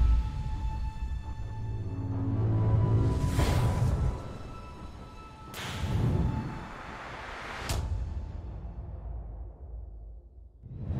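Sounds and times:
cinematic music with low rumble: 0:00.0 - 0:10.9.

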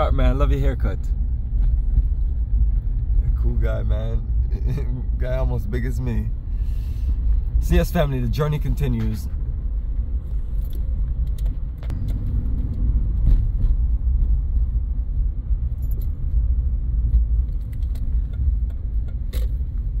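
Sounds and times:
road and engine rumble: 0:00.0 - 0:20.0
light clicks and rattles: 0:17.0 - 0:20.0.

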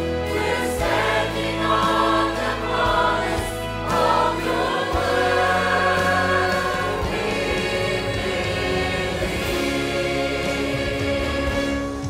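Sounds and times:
choir singing a hymn: 0:00.0 - 0:12.0
instrumental accompaniment: 0:00.0 - 0:12.0.

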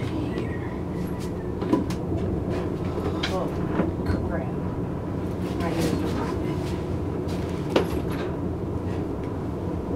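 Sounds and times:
low rumble: 0:00.0 - 0:09.9.

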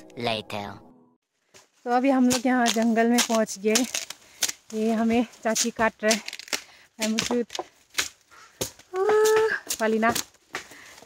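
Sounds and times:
footsteps on dry leaves: 0:01.4 - 0:10.8.

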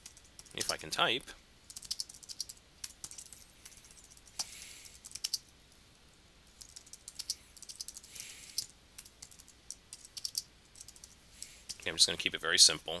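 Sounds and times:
computer keyboard typing: 0:00.0 - 0:00.7, 0:01.7 - 0:05.4, 0:06.6 - 0:11.2.

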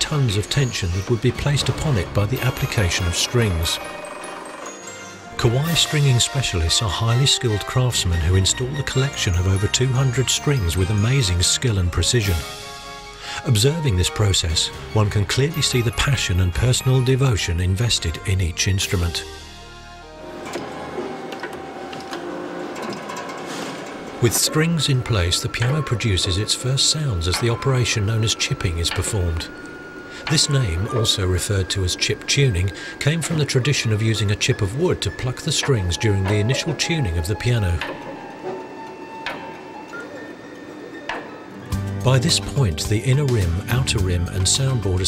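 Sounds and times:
small machine running: 0:00.0 - 0:06.4, 0:20.2 - 0:41.9
faint music: 0:00.0 - 0:45.0.

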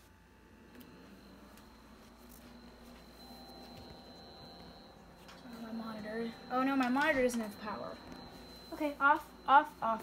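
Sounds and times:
high-pitched computer whine: 0:00.0 - 0:10.0
low computer hum: 0:00.0 - 0:10.0.

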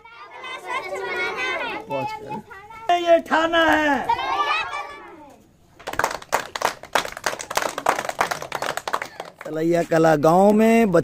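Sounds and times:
children clapping hands: 0:05.8 - 0:09.6.

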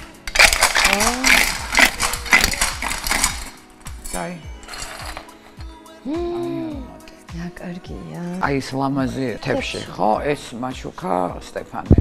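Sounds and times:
women talking: 0:00.9 - 0:01.5.

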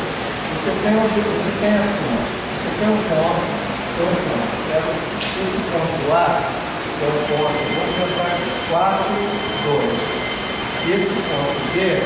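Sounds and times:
steady mechanical noise: 0:00.0 - 0:12.0
high-pitched whining tones: 0:07.2 - 0:12.0.

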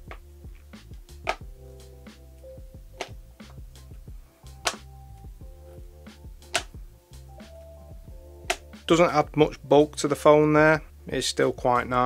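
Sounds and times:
soft background music: 0:00.0 - 0:12.0
wallet snapping onto phone: 0:01.2 - 0:01.4, 0:06.5 - 0:06.8.

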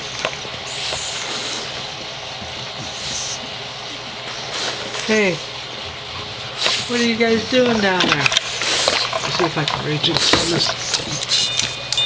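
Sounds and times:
dogs breathing and mouthing: 0:00.0 - 0:11.8
hissy puffs: 0:00.5 - 0:09.4.

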